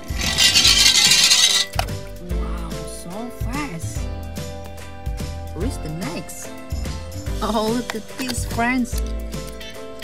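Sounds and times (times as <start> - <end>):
toy truck scraping down plastic ramp: 0.0 - 1.8
background music: 0.0 - 10.0.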